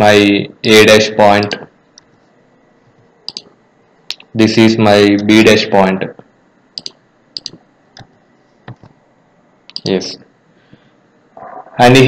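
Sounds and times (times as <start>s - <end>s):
computer mouse button clicking: 3.3s - 3.5s, 6.8s - 8.1s.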